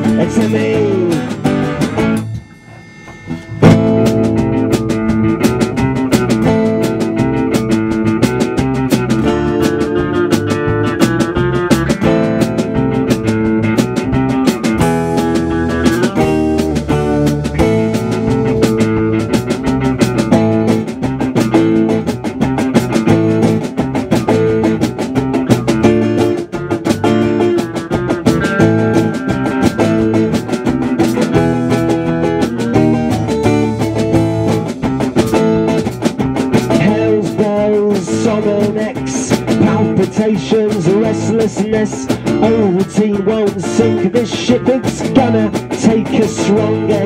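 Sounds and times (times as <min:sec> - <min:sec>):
acoustic guitar strumming: 0:00.0 - 0:47.0.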